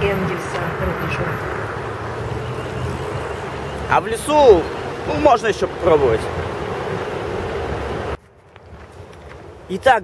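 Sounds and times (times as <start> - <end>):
faint outdoor ambience: 0.0 - 10.0
street traffic: 0.0 - 10.0.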